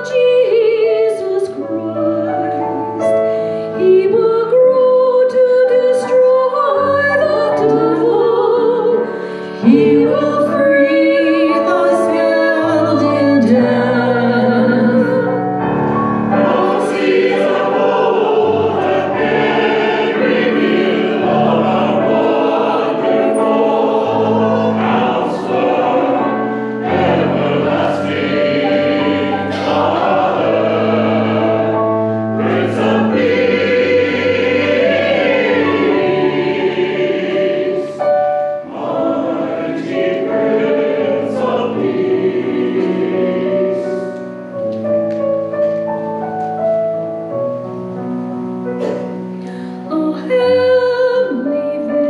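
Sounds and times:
piano: 0.0s - 52.0s
choir singing: 3.8s - 44.6s.

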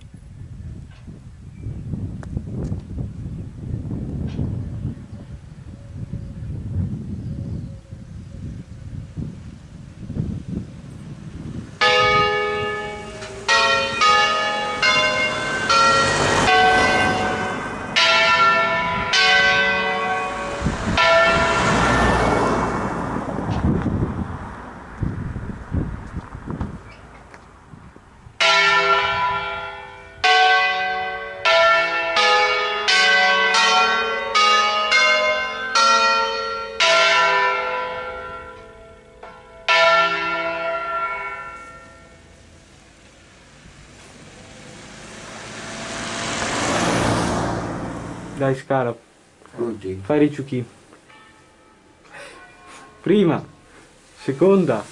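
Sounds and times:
church bells ringing: 11.8s - 23.0s, 28.4s - 42.6s, 51.0s - 54.4s.

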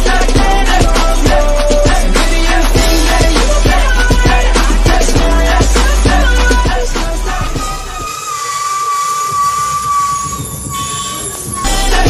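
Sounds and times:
music: 0.0s - 12.0s
bus air horn: 7.6s - 12.0s.

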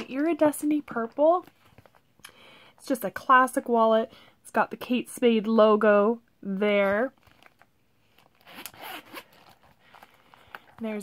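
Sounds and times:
wallet handling: 7.2s - 11.0s
metal zipper unzipping: 8.3s - 9.8s.

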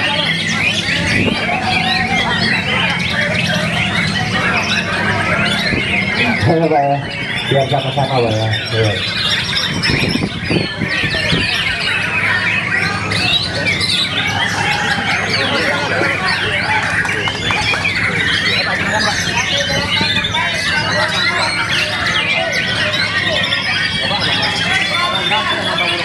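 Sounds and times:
birds whistling and chattering: 0.0s - 26.0s
crowd voices: 0.0s - 26.0s.

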